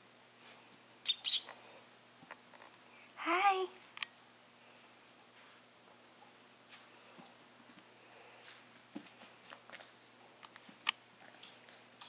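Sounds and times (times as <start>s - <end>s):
squeaky dog toy squeaking: 1.0s - 1.5s.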